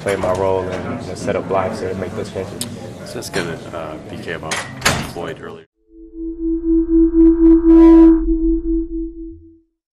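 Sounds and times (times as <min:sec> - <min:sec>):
low hum: 0:05.8 - 0:09.6
steady electronic tone: 0:05.8 - 0:09.6.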